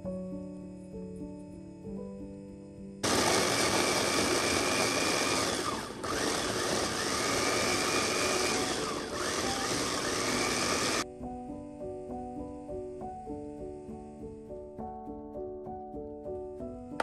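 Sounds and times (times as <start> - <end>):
electric food chopper running: 3.0 - 11.0.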